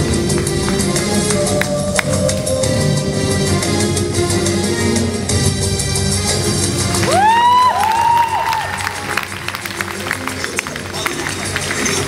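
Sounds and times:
performance music: 0:00.0 - 0:12.0
audience cheering and clapping: 0:06.8 - 0:12.0.

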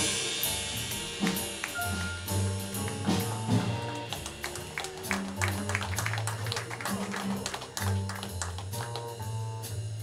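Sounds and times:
piano: 0:00.0 - 0:10.0.

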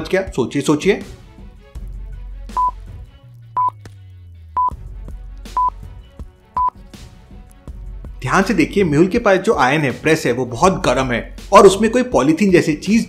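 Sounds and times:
soft background music: 0:00.0 - 0:13.0
short high beeps: 0:02.6 - 0:02.8.

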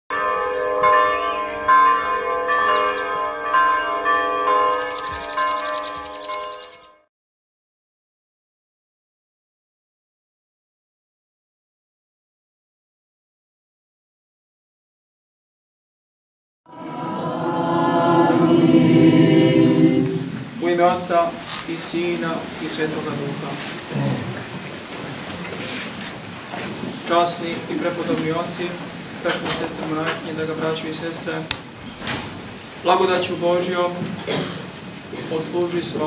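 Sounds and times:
church bells ringing: 0:00.1 - 0:07.1
birds chirping and trilling: 0:00.4 - 0:07.1, 0:30.2 - 0:33.9
choir singing chant: 0:16.7 - 0:20.5.

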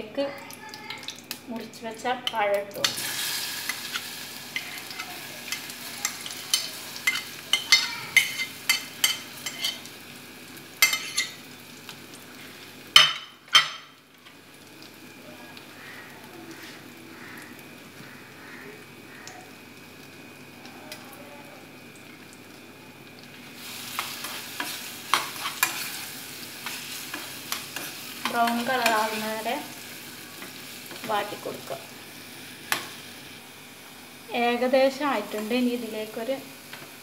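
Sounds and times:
banana pieces sizzling in a saucepan: 0:00.0 - 0:37.0
spoon scraping a pan: 0:02.2 - 0:09.9, 0:10.8 - 0:11.4, 0:23.9 - 0:29.2.

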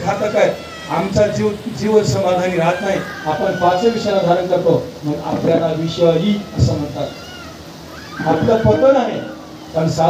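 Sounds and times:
man's voice over loudspeakers: 0:00.0 - 0:07.2, 0:08.2 - 0:10.0.

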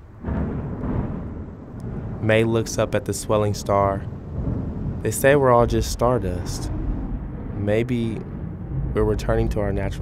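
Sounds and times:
deep thunder-like rumbling: 0:00.0 - 0:10.0.

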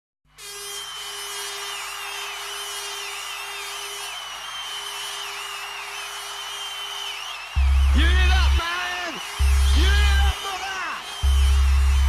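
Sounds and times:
wavering high whistle-like tone: 0:00.4 - 0:12.0.

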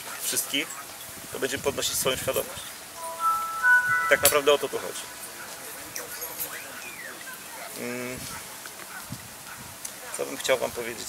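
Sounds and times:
faint open-air background: 0:00.0 - 0:11.0.

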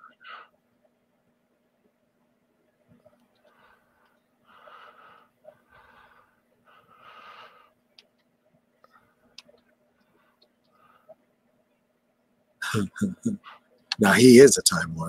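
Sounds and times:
soft breathing: 0:00.0 - 0:00.6, 0:03.0 - 0:08.2, 0:08.8 - 0:11.4.

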